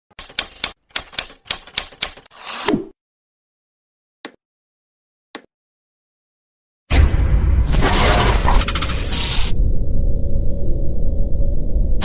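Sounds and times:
typewriter keys clacking: 0:00.1 - 0:02.3.

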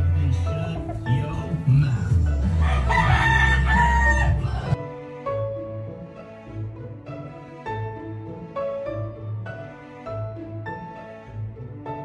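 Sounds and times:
soft background music: 0:00.0 - 0:12.0
rooster crowing: 0:02.6 - 0:04.8.

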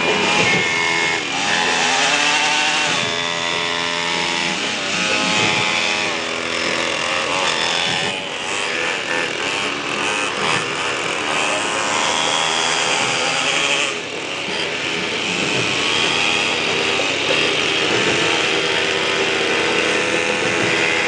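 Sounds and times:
small engines revving: 0:00.0 - 0:21.0.

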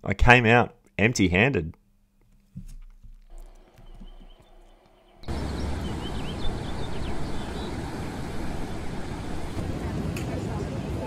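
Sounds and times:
bird chirps: 0:03.3 - 0:09.6
seaside rushing noise: 0:05.2 - 0:11.0.

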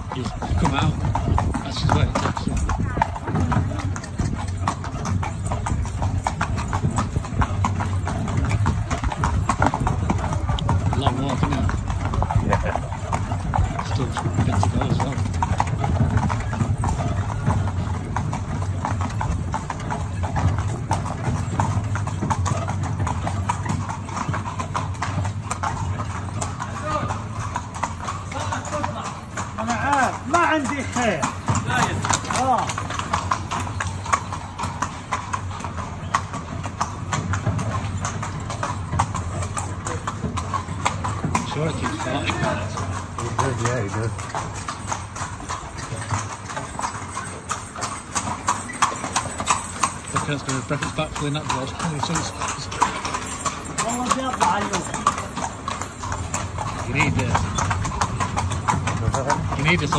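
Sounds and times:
horse hooves clip-clopping: 0:00.0 - 0:59.9.

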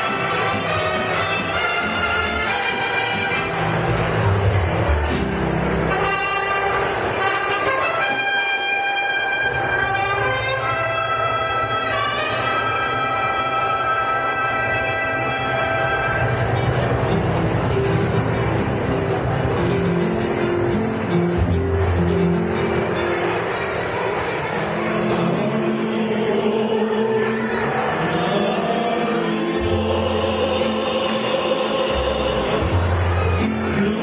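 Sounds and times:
trumpets holding long notes: 0:00.0 - 0:03.9, 0:05.8 - 0:16.9
strings playing: 0:00.0 - 0:34.0.

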